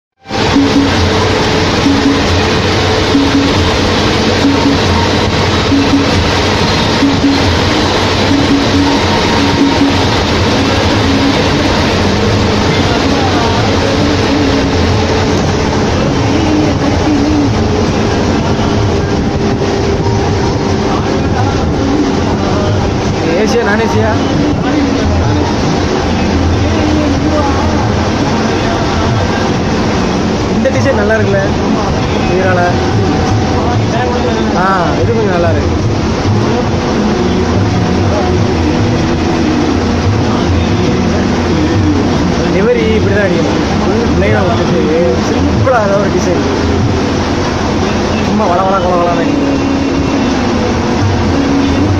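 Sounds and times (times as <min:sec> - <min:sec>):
road noise: 0:00.1 - 0:51.9
bus engine rumble: 0:00.2 - 0:51.9.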